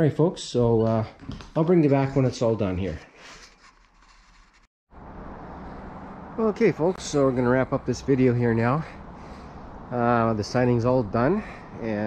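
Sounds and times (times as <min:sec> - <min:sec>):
low hum: 0:04.9 - 0:11.8
outdoor background noise: 0:04.9 - 0:12.0.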